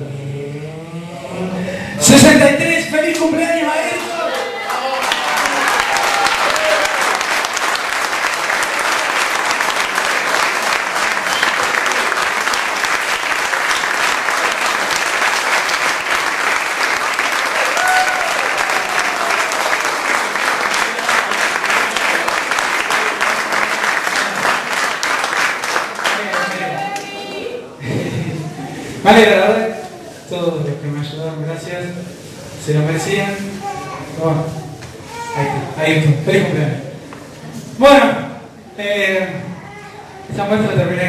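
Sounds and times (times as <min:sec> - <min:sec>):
audience applauding: 0:03.8 - 0:27.2.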